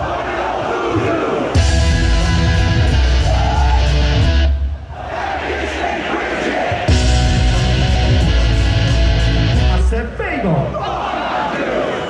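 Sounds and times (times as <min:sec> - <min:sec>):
live concert music over pa: 0:01.5 - 0:05.8, 0:06.4 - 0:10.9.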